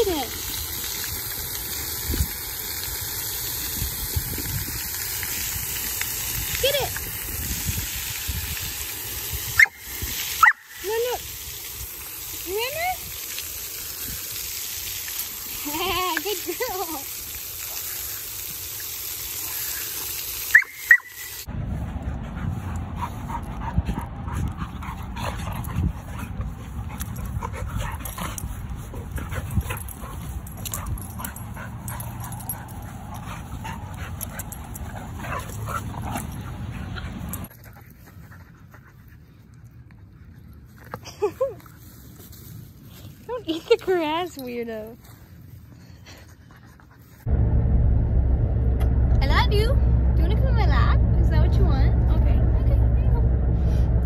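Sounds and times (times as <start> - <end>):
fountain water hissing: 0.0 - 21.5
dogs scuffling on grass: 40.6 - 45.9.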